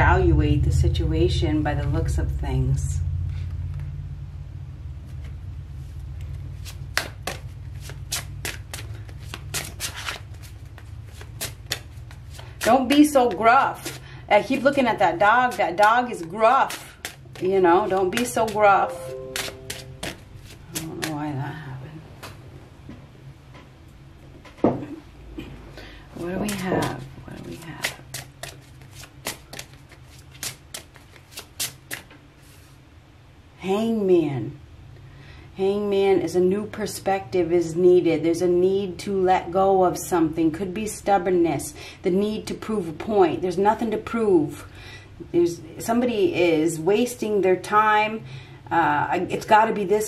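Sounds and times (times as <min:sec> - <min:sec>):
cards shuffled by hand: 0:06.6 - 0:14.0, 0:16.6 - 0:18.6, 0:19.4 - 0:21.2, 0:26.5 - 0:32.7.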